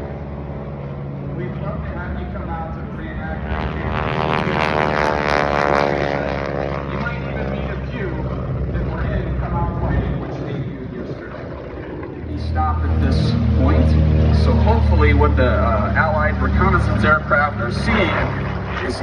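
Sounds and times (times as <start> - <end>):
deep engine rumble: 0.0 - 19.0
propeller aircraft engine drone: 0.0 - 19.0.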